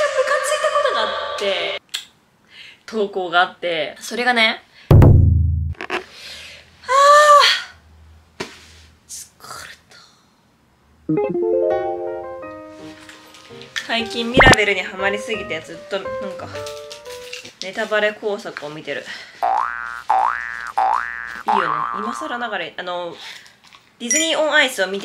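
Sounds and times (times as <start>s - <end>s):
short thump: 4.9s - 5.8s
rising comedy tone: 11.1s - 12.4s.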